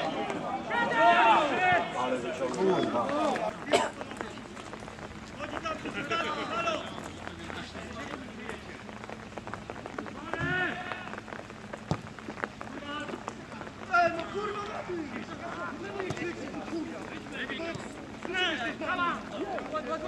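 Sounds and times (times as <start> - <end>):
rain falling: 0.0 - 20.0.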